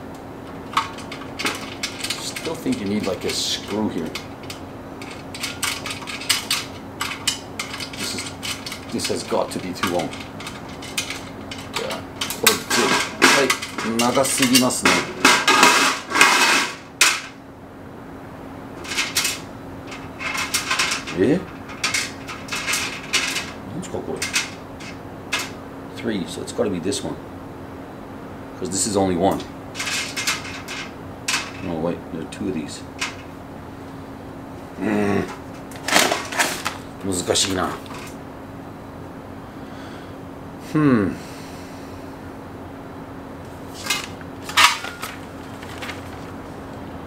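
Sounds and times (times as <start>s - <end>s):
steady low hum: 0.0s - 47.0s
metal grill parts clinking: 0.4s - 17.4s, 18.8s - 25.6s, 29.3s - 31.8s, 33.0s - 33.3s, 35.3s - 38.2s, 43.7s - 46.3s
metal screws clinking: 4.4s - 15.6s.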